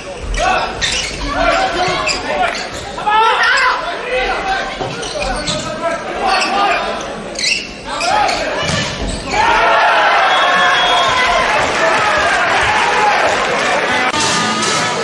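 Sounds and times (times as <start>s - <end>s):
people shouting: 8.1s - 14.1s.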